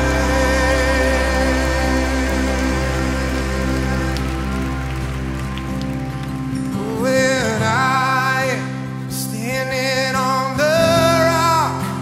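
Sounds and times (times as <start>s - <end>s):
held chords from live band: 0.0s - 12.0s.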